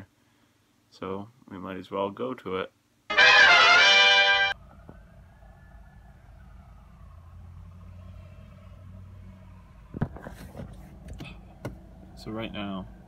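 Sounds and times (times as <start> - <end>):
brass music sting: 3.1 - 4.6.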